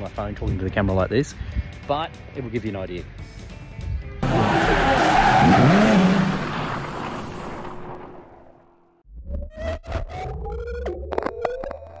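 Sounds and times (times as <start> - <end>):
noisy whoosh: 5.4 - 8.9.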